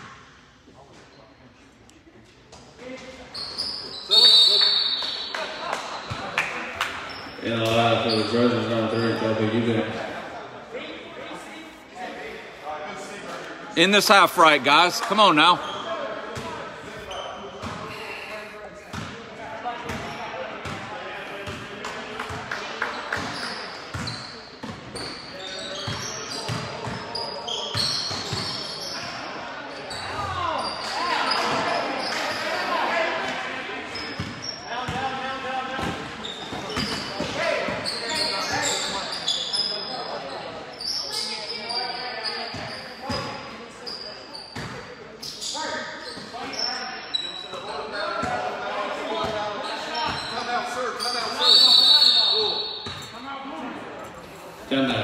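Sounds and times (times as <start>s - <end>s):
sneaker squeaks: 2.5s - 6.2s, 6.8s - 9.5s, 14.8s - 18.0s, 22.8s - 32.9s, 33.9s - 35.0s, 35.8s - 48.5s, 49.2s - 53.2s.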